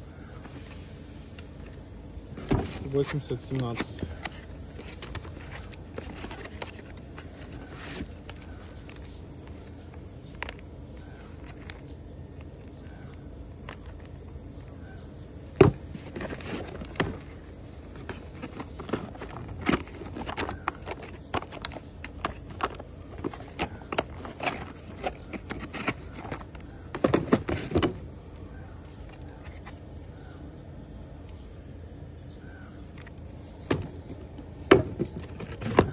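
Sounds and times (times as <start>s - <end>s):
crinkling plastic and cardboard: 2.4s - 14.8s, 15.5s - 28.1s, 28.8s - 29.8s, 32.8s - 35.9s.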